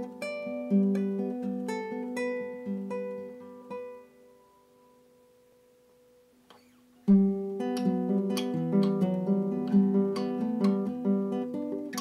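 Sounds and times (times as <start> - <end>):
acoustic guitar ringing: 6.5 - 12.0.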